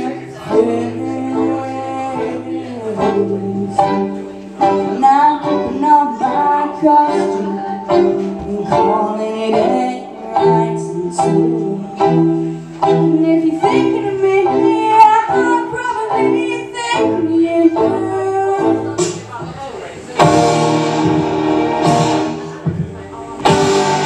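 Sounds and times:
low bass accompaniment: 19.1 - 24.0.

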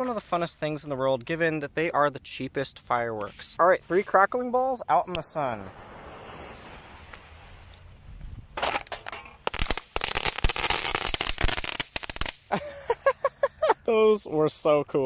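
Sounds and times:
crackling fireworks: 3.2 - 12.7.

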